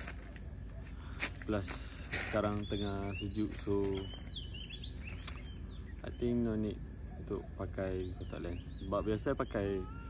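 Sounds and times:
birds chirping: 0:00.0 - 0:10.0
sharp click: 0:05.2 - 0:05.5.

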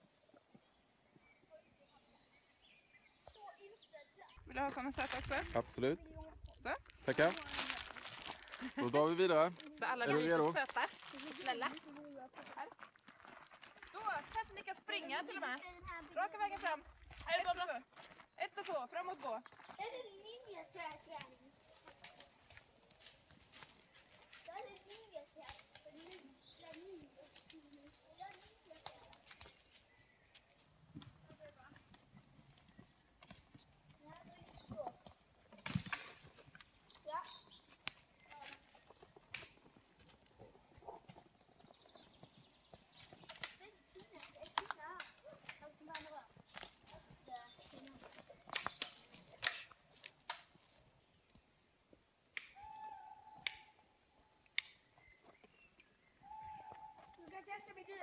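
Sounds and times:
footsteps crunching through dry leaves: 0:04.4 - 0:06.0, 0:06.6 - 0:14.6, 0:16.0 - 0:31.4, 0:37.2 - 0:50.9
twigs snapping: 0:04.7 - 0:05.7, 0:06.8 - 0:12.1, 0:20.8 - 0:30.5, 0:32.6 - 0:33.6, 0:35.0 - 0:40.2, 0:42.9 - 0:51.4, 0:52.3 - 0:53.8, 0:54.5 - 0:54.9.

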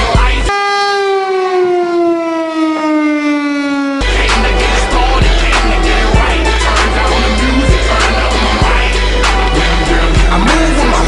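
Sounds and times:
warning siren sliding down: 0:00.3 - 0:08.3.

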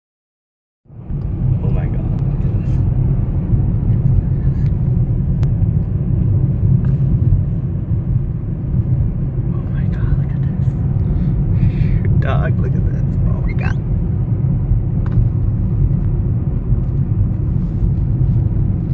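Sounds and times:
car road noise rumble: 0:00.8 - 0:18.9.

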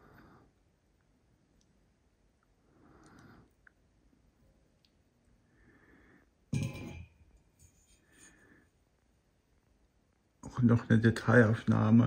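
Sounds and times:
faint breathing: 0:00.0 - 0:00.7, 0:02.5 - 0:03.8, 0:05.3 - 0:06.5, 0:07.9 - 0:08.9.

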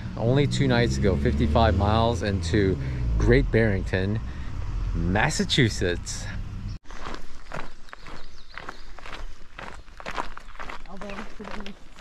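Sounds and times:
footsteps on asphalt: 0:06.8 - 0:12.0.

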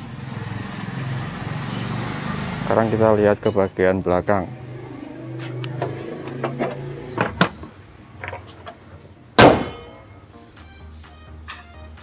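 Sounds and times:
car bonnet slamming shut: 0:09.4 - 0:09.9.

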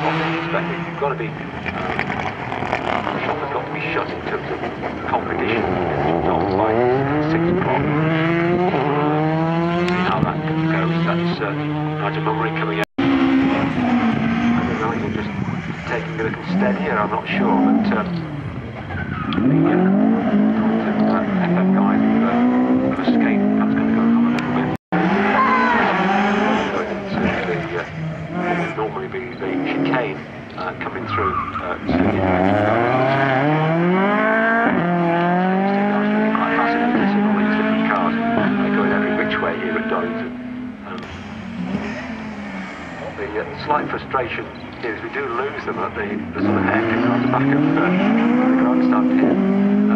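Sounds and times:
rally car engine: 0:00.0 - 0:49.9.

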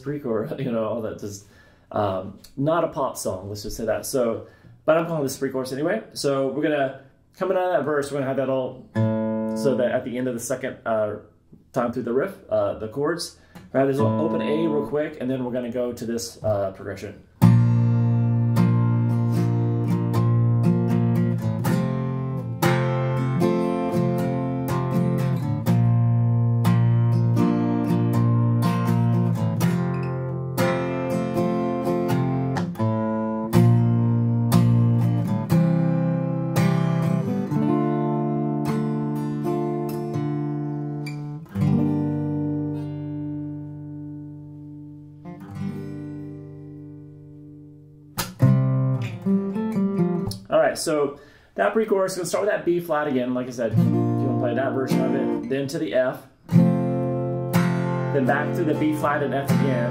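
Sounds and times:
acoustic guitar strummed: 0:09.0 - 0:09.8, 0:13.7 - 0:15.2, 0:17.4 - 0:50.4, 0:53.3 - 0:59.9.

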